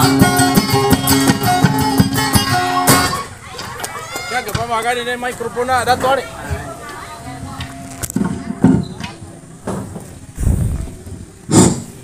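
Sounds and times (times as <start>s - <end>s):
microphone handling rumble: 7.4s - 12.0s
loud microphone bump: 8.2s - 12.0s.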